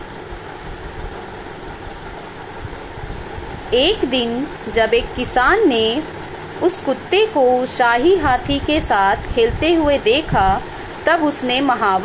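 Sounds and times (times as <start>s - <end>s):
speech: 3.7s - 12.0s.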